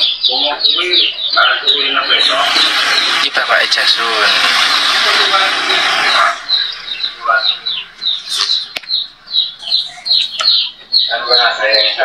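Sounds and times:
small bird chirping: 0.0s - 4.4s, 5.1s - 12.0s.

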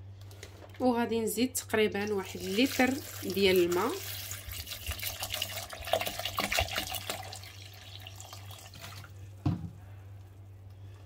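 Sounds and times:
water pouring and splashing: 2.1s - 9.2s.

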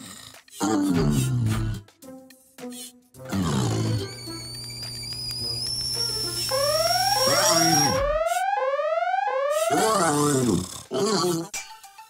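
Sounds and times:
arched electronic tones: 3.8s - 10.3s
rising electronic sweeps: 3.9s - 10.1s
high synthesizer whine: 3.9s - 10.2s.

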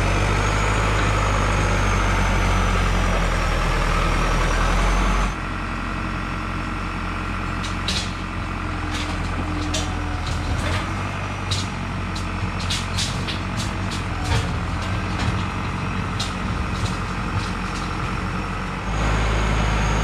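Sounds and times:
tractor diesel engine running: 0.0s - 20.0s
sharp clicks and clanks: 7.6s - 18.4s.

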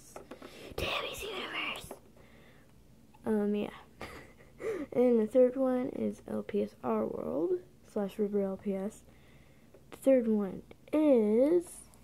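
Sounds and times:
person whispering: 0.8s - 2.0s.

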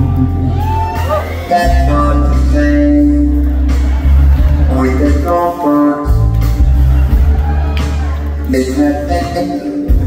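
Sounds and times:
bass guitar: 0.0s - 10.0s.

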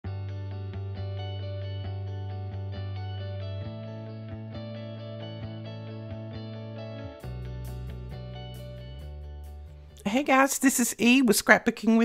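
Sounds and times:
intro music: 0.0s - 10.4s.

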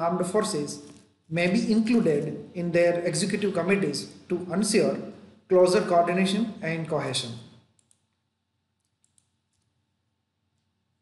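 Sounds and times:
faint computer clicks: 7.8s - 8.2s.

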